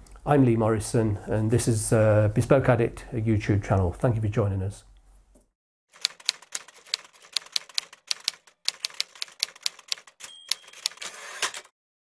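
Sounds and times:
typewriter keys clacking: 6.0 - 11.7
typewriter bell ring: 9.4 - 11.7.

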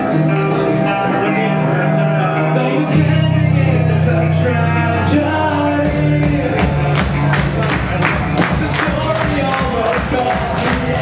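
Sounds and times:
electric guitar chords: 0.0 - 11.0.

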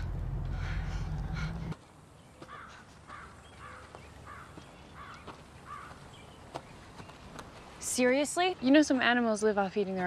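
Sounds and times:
low rumble: 0.0 - 1.8
quiet woodland ambience: 0.0 - 10.0
crow cawing: 2.4 - 6.0.

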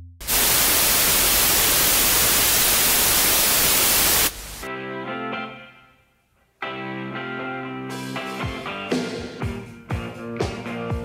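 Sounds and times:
television static hiss: 0.2 - 4.7
music: 4.6 - 11.0.

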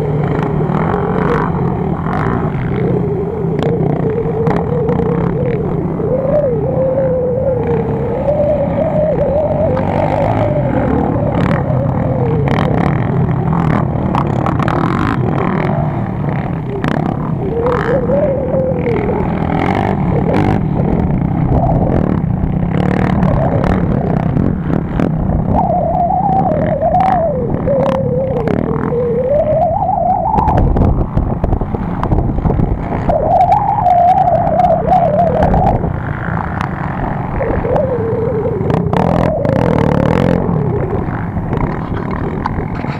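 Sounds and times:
quad bike engines revving: 0.0 - 42.9
steady low rumble: 0.0 - 42.9.

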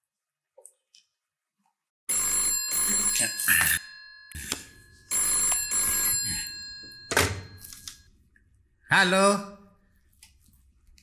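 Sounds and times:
telephone bell ringing: 2.1 - 8.1.

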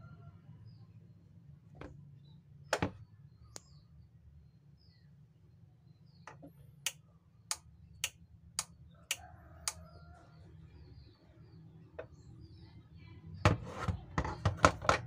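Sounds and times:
small birds chirping: 0.6 - 14.5.

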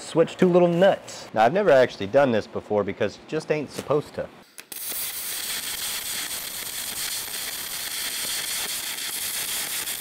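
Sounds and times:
welding arc crackling hiss: 4.5 - 10.0.

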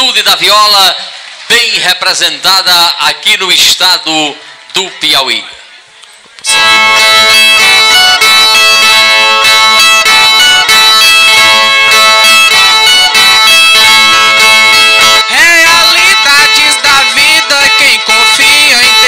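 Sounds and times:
ten-string guitars drone: 6.5 - 19.0.

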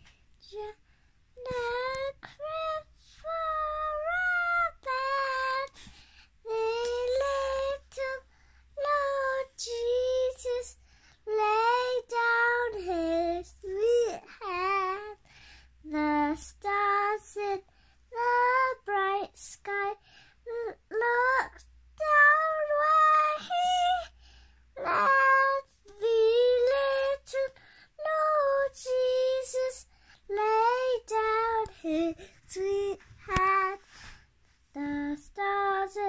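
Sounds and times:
girl singing unaccompanied: 0.0 - 36.0.

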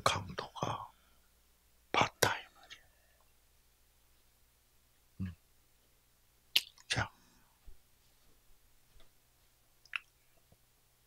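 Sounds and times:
man whispering: 0.0 - 1.0, 1.9 - 3.3, 5.2 - 5.4, 6.7 - 7.6.

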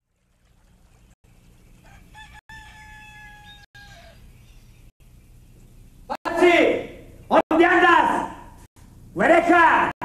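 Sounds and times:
rooster crowing: 1.8 - 4.5.

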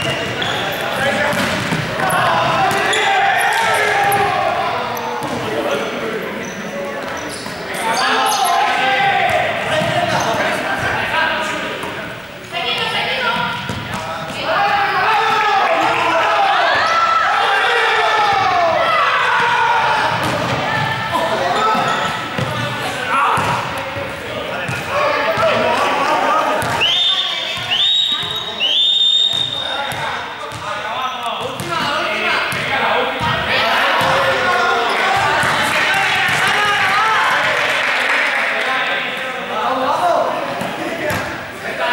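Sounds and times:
students talking and calling out: 0.0 - 41.9
ball bouncing on court floor: 1.3 - 3.0, 12.8 - 14.4, 20.1 - 21.0, 21.8 - 22.7, 23.3 - 23.9, 40.6 - 41.4.

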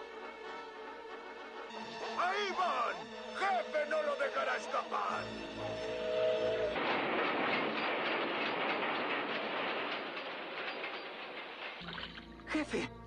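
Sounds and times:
train rushing clatter: 1.8 - 12.1
chord-like train whistle: 5.2 - 6.8.

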